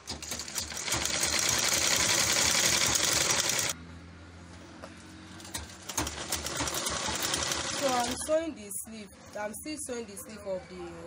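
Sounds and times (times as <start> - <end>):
sewing machine stitching: 0.0 - 3.8, 5.5 - 8.3.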